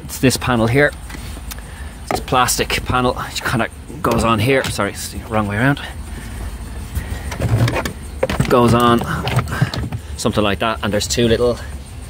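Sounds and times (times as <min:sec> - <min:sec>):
steady low hum: 0:00.0 - 0:12.0
plastic panel clicking and rubbing: 0:07.3 - 0:10.0.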